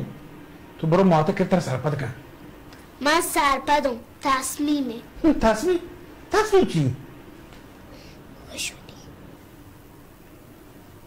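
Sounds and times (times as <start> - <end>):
person whispering: 8.4 - 9.1.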